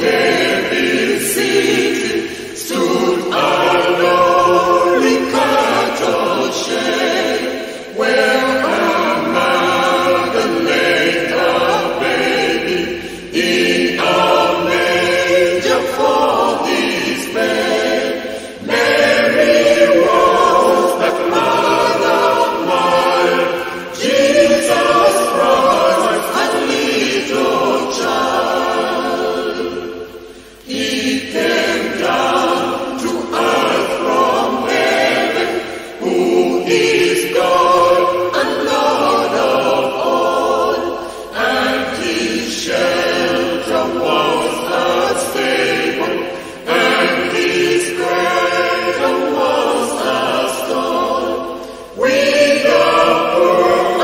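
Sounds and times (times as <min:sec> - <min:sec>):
choir singing a hymn: 0:00.0 - 0:54.0.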